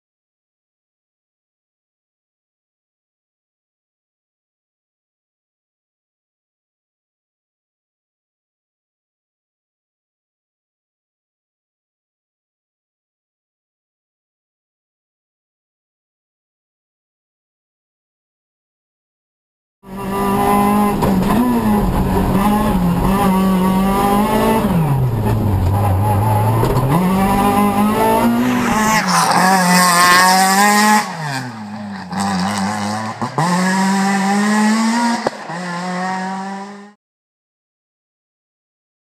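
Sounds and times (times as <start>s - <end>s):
rally car engine at high revs: 19.9s - 37.0s.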